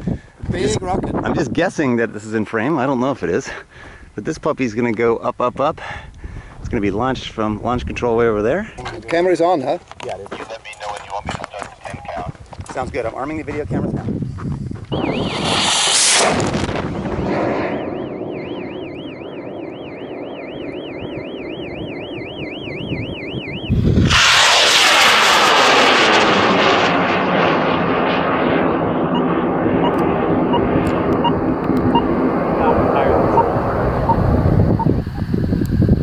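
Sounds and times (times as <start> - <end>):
warbling electronic tone: 14.9 - 24.5, 29.2 - 35.3
rocket motor roar: 14.9 - 36.0.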